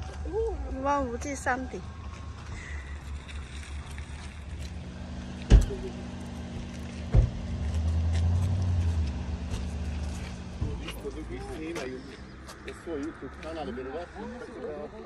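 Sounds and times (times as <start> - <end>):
car engine running: 0.7 - 13.4
sharp knocks: 7.1 - 7.5.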